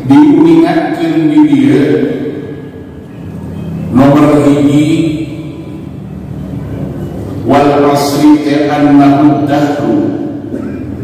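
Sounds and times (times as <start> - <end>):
man chanting over loudspeakers: 0.0 - 2.7, 3.9 - 5.8, 7.4 - 10.5.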